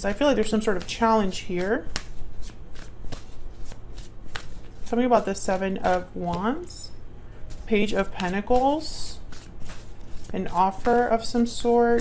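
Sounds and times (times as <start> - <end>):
cards being shuffled: 0.4 - 6.7, 7.4 - 12.0.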